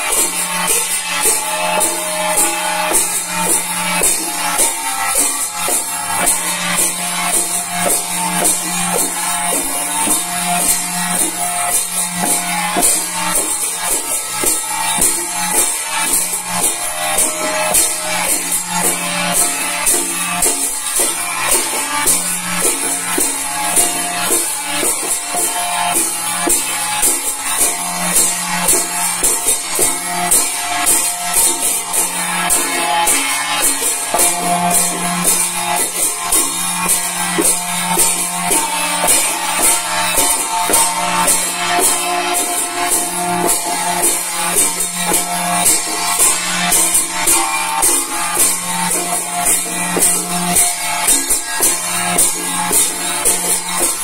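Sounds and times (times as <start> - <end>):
hand cymbals beating: 0.0 - 54.0
handheld drums beating: 0.0 - 54.0.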